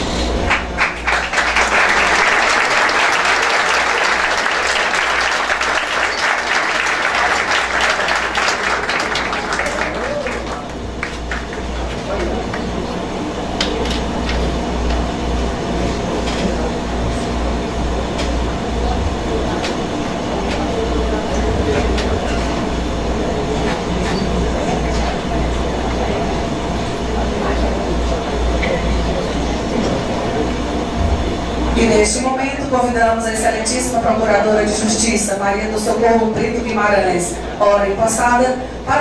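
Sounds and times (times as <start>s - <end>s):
murmur of people talking: 1.8s - 39.0s.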